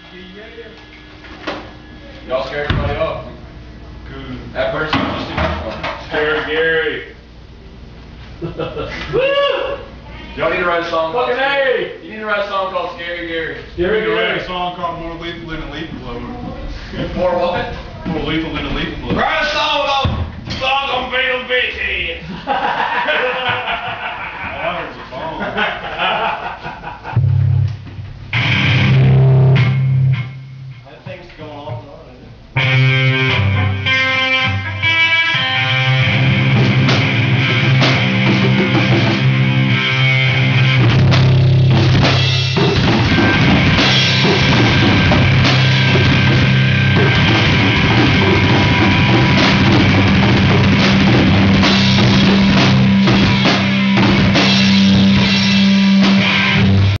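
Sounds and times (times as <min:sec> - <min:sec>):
live metal guitar and drums: 0:28.3 - 0:30.3, 0:32.6 - 0:57.0.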